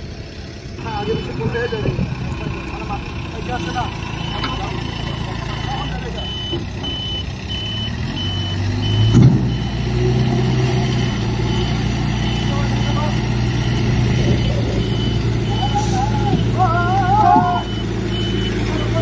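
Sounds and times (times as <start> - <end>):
diesel engine running: 0.0 - 19.0
reversing alarm beeping: 0.8 - 19.0
thud: 9.1 - 9.5.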